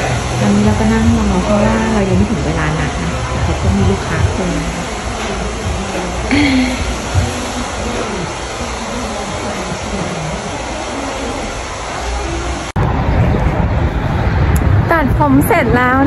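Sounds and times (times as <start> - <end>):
faint voices: 0.0 - 16.0
low rumble of street traffic: 0.0 - 16.0
steady rushing noise: 0.0 - 16.0.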